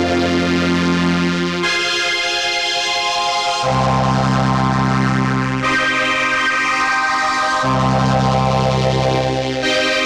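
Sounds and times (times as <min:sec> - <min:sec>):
low bass notes: 0:00.0 - 0:02.0, 0:03.6 - 0:05.8.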